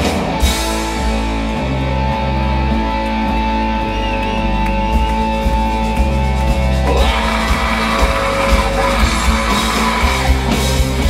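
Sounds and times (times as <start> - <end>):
bass guitar: 0.0 - 11.0
distorted electric guitars: 0.0 - 11.0
drums: 0.0 - 11.0
lead vocal singing: 6.8 - 10.7.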